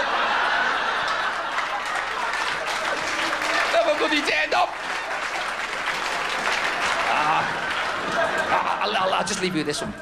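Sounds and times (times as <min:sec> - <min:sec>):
audience applauding: 0:00.0 - 0:09.7.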